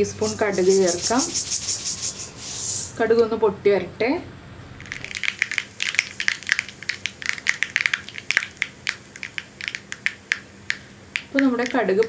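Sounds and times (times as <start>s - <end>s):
mustard seeds popping in oil: 4.8s - 12.0s.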